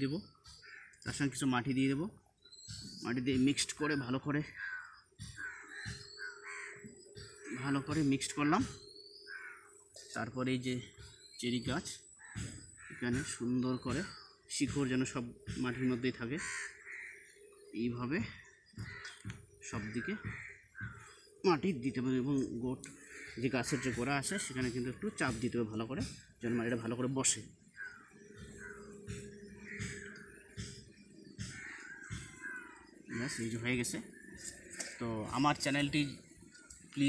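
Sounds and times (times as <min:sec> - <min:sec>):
crow cawing: 0:00.4 - 0:01.4, 0:04.4 - 0:10.1, 0:12.0 - 0:14.8, 0:15.5 - 0:26.4, 0:27.4 - 0:37.0
man speaking: 0:03.0 - 0:04.5, 0:19.6 - 0:20.2, 0:21.4 - 0:27.5, 0:34.8 - 0:36.2.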